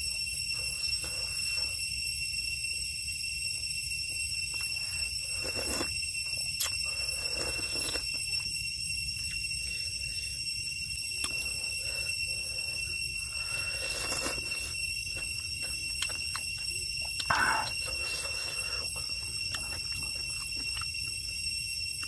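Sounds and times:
night insects chorus: 0.0 - 22.0
chewing: 4.5 - 8.5, 11.2 - 11.8, 13.5 - 21.2
slurping porridge: 4.6 - 8.4, 11.2 - 16.5, 17.2 - 20.8.

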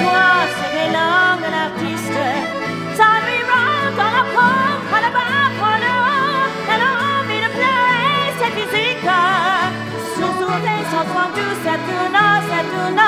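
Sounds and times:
accordion chords: 0.0 - 13.0
woman singing with vibrato: 0.0 - 13.0.

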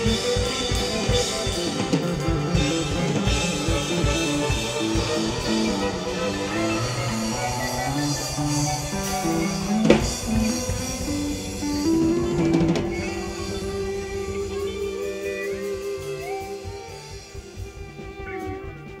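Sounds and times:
drum and cymbal hits: 0.0 - 19.0
live band music: 0.0 - 19.0
string band held notes: 0.0 - 19.0.

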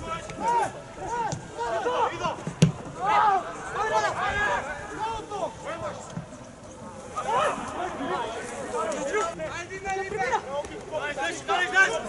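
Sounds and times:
men shouting and calling out: 0.0 - 6.1, 7.0 - 12.0.

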